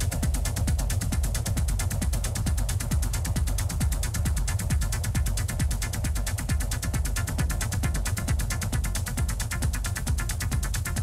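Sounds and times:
deep bass line: 0.0s - 11.0s
ticking hi-hats: 0.0s - 11.0s.

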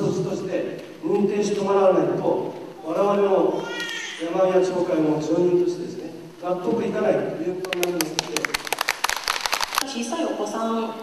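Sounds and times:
audience applauding: 7.6s - 9.9s.

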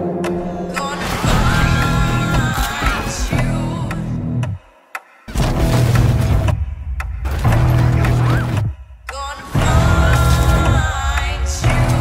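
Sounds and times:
action trailer music: 0.0s - 12.0s.

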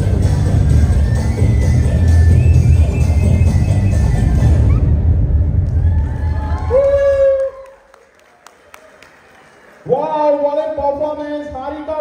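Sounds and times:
dance song: 0.0s - 5.5s
audience cheering and clapping: 3.8s - 10.4s
person shouting woo: 5.8s - 7.8s.

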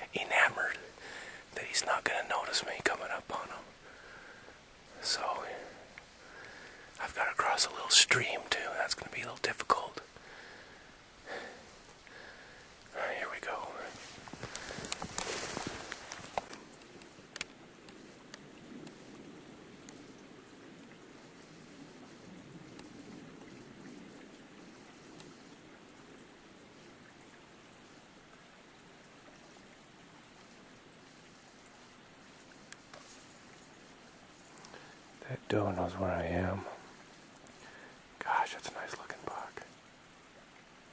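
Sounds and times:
running water hiss: 0.0s - 40.9s.

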